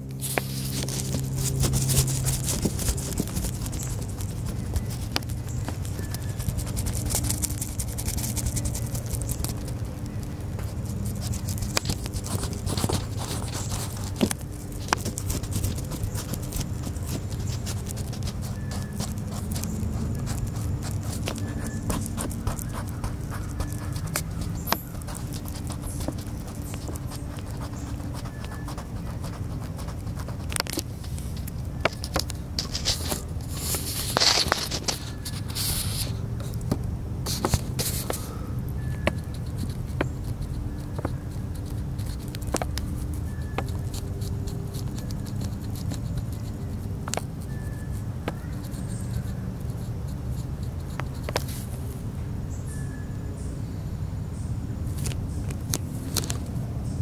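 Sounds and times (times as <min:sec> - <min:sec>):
low hum: 0:00.0 - 0:57.0
crayon scratching on paper: 0:00.1 - 0:51.8.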